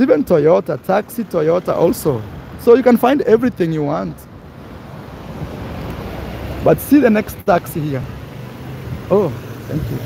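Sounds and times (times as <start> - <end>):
street traffic: 0.0 - 10.0
car passing close by: 4.5 - 10.0.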